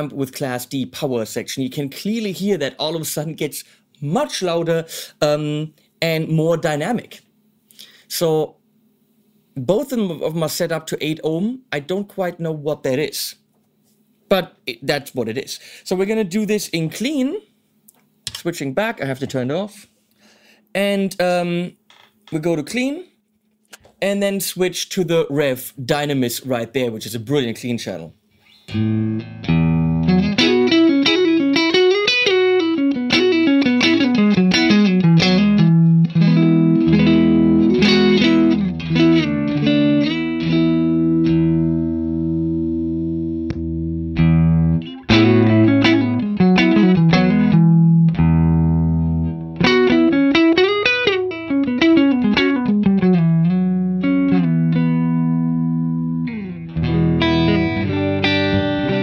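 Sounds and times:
clean electric guitar: 28.4 - 59.0.

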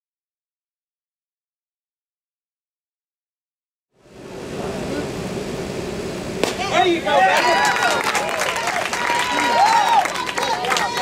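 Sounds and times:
sharp crack of ball impact: 6.4 - 6.7
people calling out: 6.4 - 11.0
spectators murmuring: 6.4 - 11.0.

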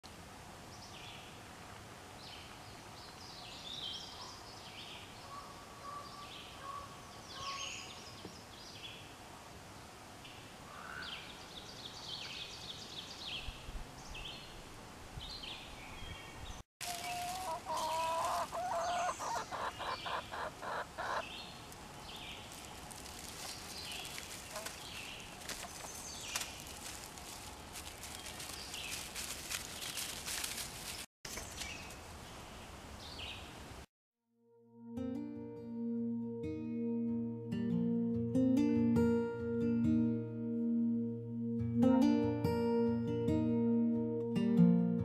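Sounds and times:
songbirds chirping: 0.6 - 33.6
hens clucking: 16.8 - 21.2, 24.4 - 24.8.

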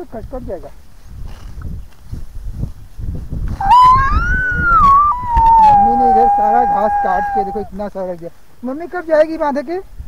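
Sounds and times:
low rumbling rustle: 0.6 - 3.6
long high-pitched call: 3.6 - 7.7.

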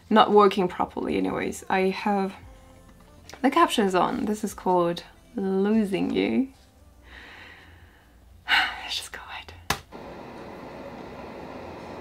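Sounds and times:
faint steady hum: 5.0 - 12.0
woman whispering: 8.4 - 9.7.

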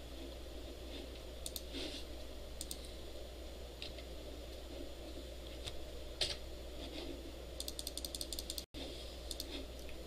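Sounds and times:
low room hum: 0.0 - 10.0
computer mouse clicking: 1.4 - 1.7, 2.6 - 2.9, 7.6 - 8.7, 9.3 - 10.0.

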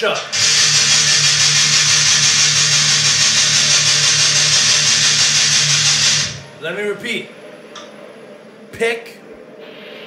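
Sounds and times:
distorted electric guitar chugging: 0.0 - 6.5.

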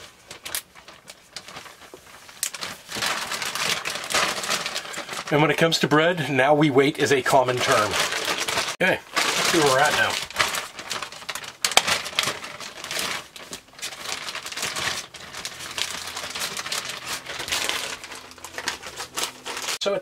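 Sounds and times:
plastic bag crinkling: 0.0 - 6.0, 6.7 - 19.8.

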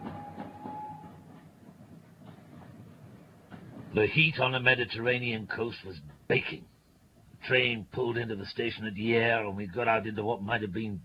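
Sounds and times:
thin held tone: 0.0 - 1.2
train rumbling and clattering: 0.0 - 11.0.

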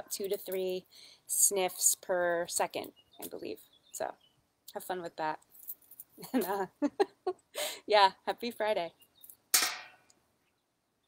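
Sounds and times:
sharp knock: 9.6 - 10.0.

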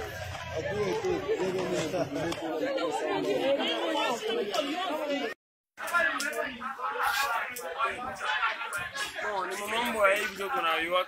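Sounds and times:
overlapping voices: 0.0 - 10.9.

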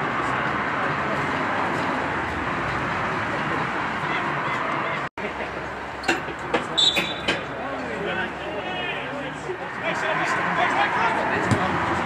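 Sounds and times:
players calling out: 6.7 - 12.0
high-pitched whistle: 6.8 - 7.3.

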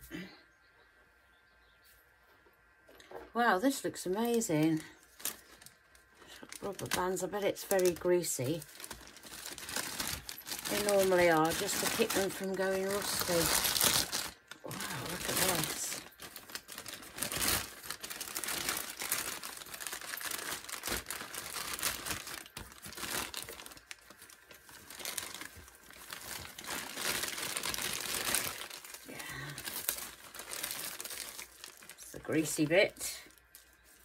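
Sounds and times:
plastic bag crinkling: 3.0 - 34.0.

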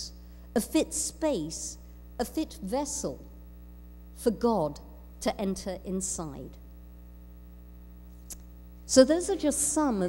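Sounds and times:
mains hum: 0.0 - 10.0.

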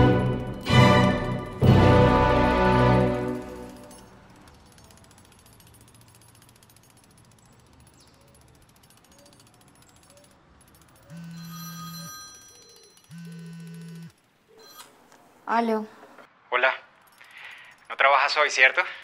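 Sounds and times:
mobile phone ringing: 11.1 - 15.0.

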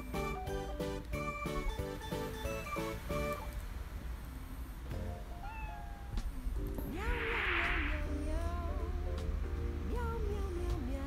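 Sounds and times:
quiet background music: 0.0 - 11.0
cat meowing: 5.4 - 6.4.

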